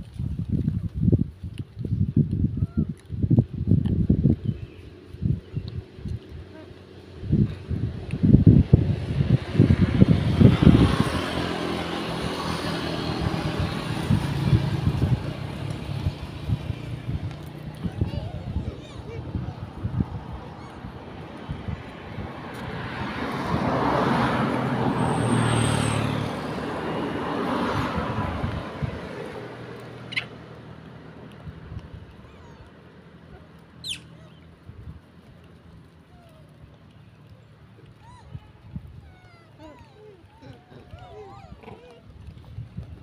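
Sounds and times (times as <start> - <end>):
car passing: 6.7 - 42.9.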